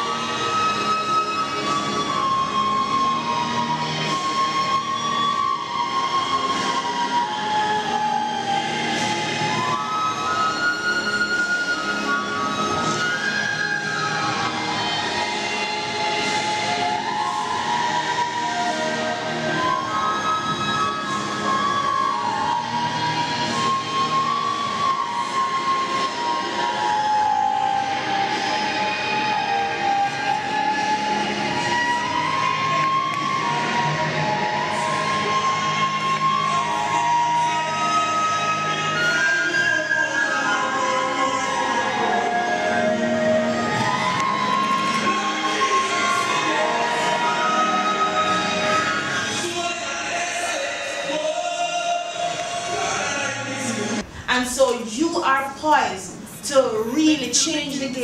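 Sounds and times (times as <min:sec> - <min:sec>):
flute playing slow melody: 0:00.0 - 0:53.5
backing accompaniment: 0:00.0 - 0:58.0.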